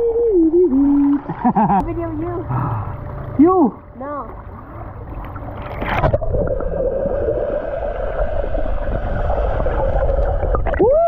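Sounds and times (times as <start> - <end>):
child making wavering hum-like calls: 0.0 - 1.3.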